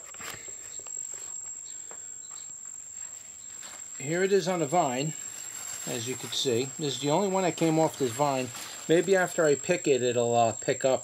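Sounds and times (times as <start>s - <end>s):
steady high-pitched whine: 0.0s - 11.0s
rustling leaves: 2.6s - 10.3s.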